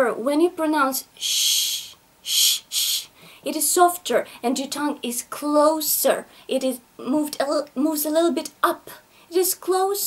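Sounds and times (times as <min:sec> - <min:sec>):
woman making hissing sound: 0:01.2 - 0:03.2.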